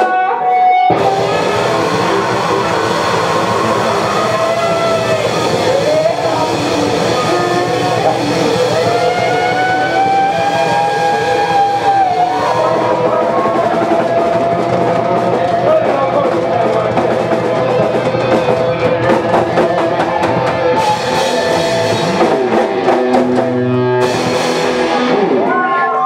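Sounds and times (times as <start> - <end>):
electric guitar: 0.0 - 26.0
live funk band: 0.0 - 26.0.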